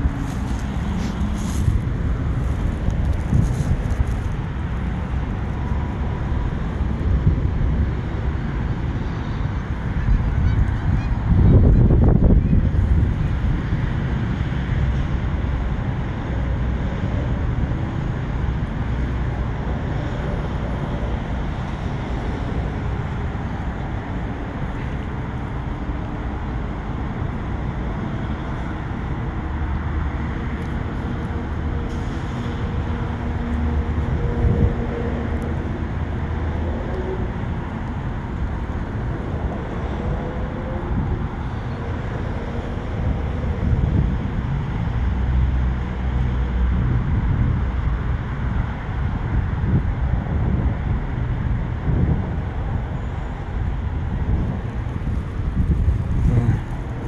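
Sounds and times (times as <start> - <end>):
road traffic rumble: 0.0 - 57.0.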